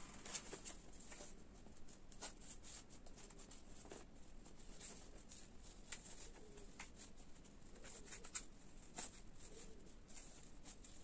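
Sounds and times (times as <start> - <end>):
paper rustling: 0.0 - 11.0.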